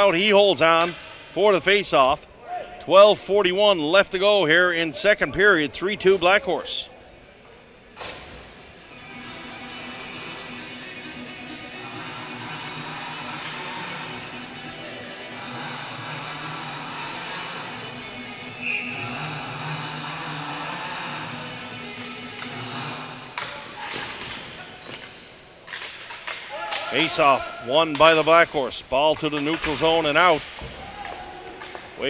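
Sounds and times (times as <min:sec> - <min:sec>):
music in an arena: 0:06.6 - 0:24.0
hockey sticks and ball knocking: 0:23.4 - 0:27.2, 0:27.8 - 0:32.0.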